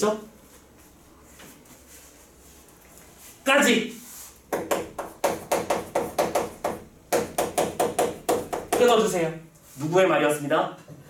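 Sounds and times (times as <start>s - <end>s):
chalk tapping on chalkboard: 4.5s - 9.2s.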